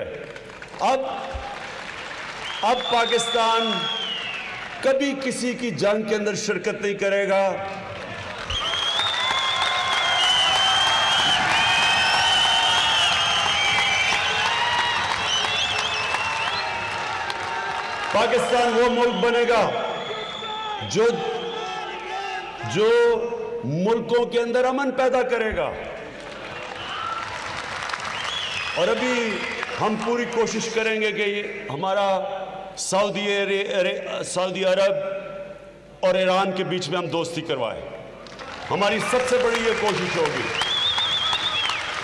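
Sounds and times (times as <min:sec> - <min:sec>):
audience applauding: 0:00.3 - 0:04.9, 0:07.7 - 0:19.2, 0:26.0 - 0:30.6, 0:38.2 - 0:42.0
high whistles: 0:02.4 - 0:04.7, 0:08.5 - 0:17.0, 0:18.4 - 0:22.0, 0:28.1 - 0:29.0, 0:40.5 - 0:42.0
man's voice: 0:04.9 - 0:07.7, 0:20.8 - 0:26.0, 0:38.7 - 0:40.5.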